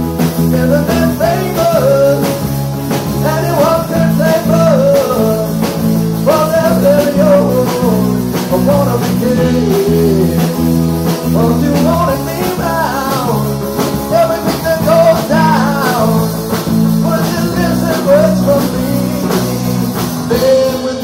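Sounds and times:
live rock band: 0.0 - 21.0.

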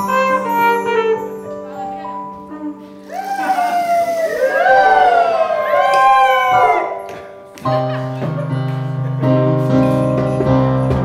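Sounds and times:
band with trumpet and keyboard: 0.0 - 4.6, 6.6 - 11.0.

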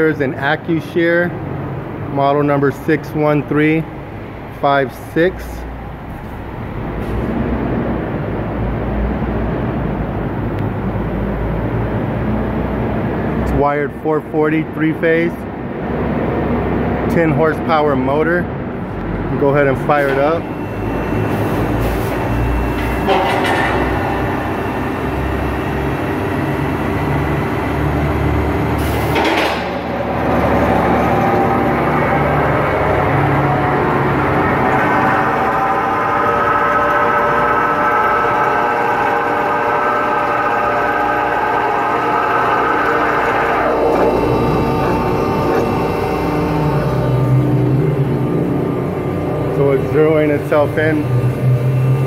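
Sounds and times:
motor and hydraulic pump humming: 0.0 - 13.5, 18.5 - 52.0
high whine falling in pitch: 17.2 - 52.0
machine clunk: 22.7 - 24.5, 28.8 - 31.4.

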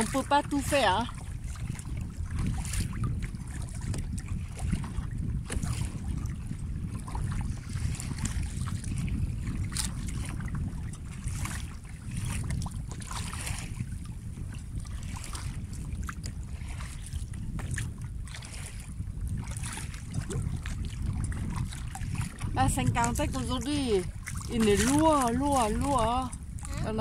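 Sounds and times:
paddle strokes splashing: 0.0 - 27.0
water lapping against a kayak: 0.0 - 27.0
wind rumbling on microphone: 0.0 - 27.0.

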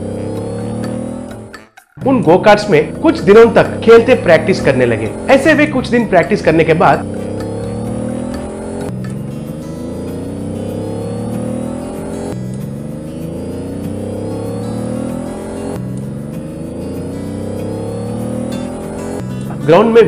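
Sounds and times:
go-kart engine revving: 0.0 - 1.6, 2.3 - 20.0.

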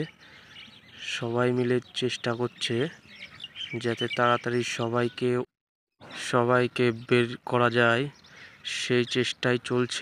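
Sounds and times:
man speaking: 1.0 - 3.0, 3.8 - 10.0.

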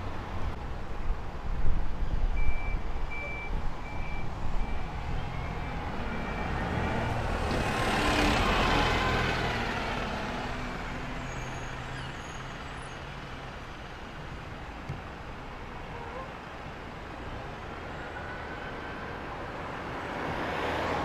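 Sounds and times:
diesel bus passing: 3.1 - 21.0.

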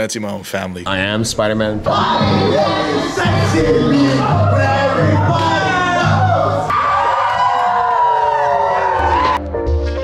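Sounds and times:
loud backing track: 1.0 - 10.0
people whooping and yelling: 1.9 - 9.4.

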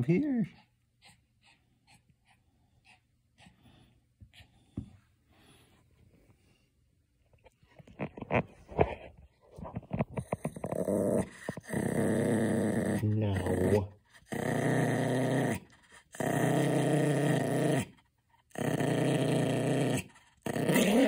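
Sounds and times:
dog growling: 9.9 - 21.0.

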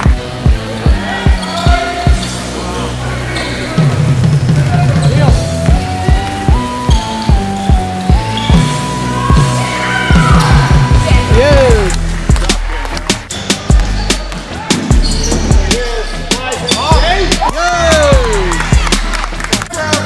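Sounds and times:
sneakers squeaking: 1.3 - 2.5, 4.7 - 17.4
music with stepping melody: 4.0 - 20.0.

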